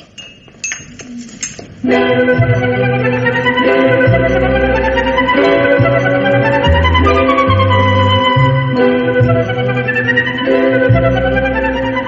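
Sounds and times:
organ chord: 1.8 - 12.0.

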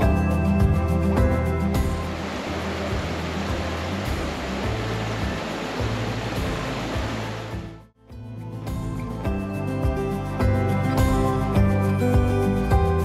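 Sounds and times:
low background music notes: 0.0 - 13.0
creek water flowing: 1.5 - 7.9.

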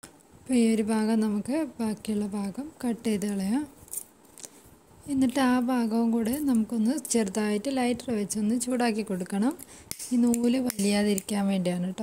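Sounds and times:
woman speaking: 0.5 - 3.8, 5.0 - 12.0.

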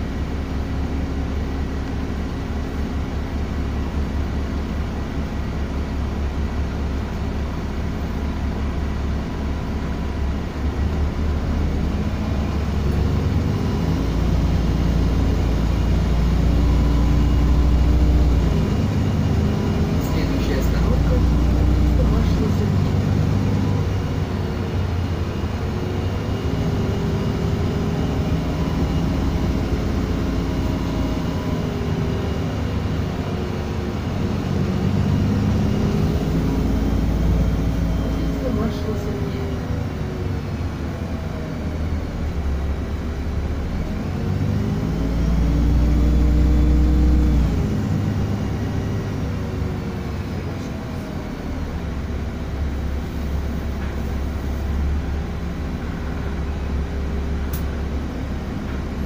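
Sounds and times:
bus engine rumbling: 0.0 - 59.0.

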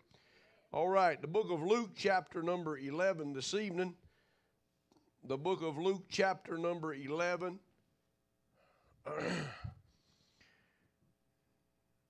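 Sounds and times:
faint breath: 0.0 - 0.7, 4.0 - 4.6, 8.5 - 9.0, 9.9 - 11.0
man clearing his throat: 9.0 - 9.9.

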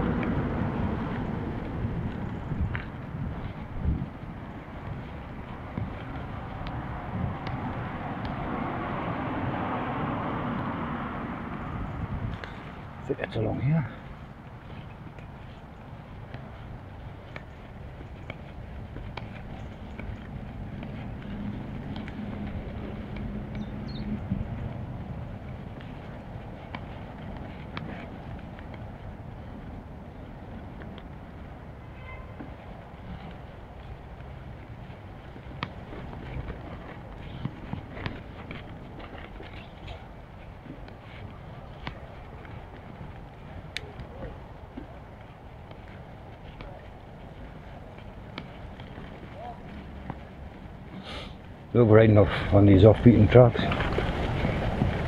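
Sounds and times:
wind on microphone: 0.0 - 13.0, 14.2 - 30.7, 52.4 - 55.0
bike rattling over bumps: 0.0 - 31.6, 32.2 - 55.0
bicycle tyres rumbling on dirt: 0.0 - 55.0.

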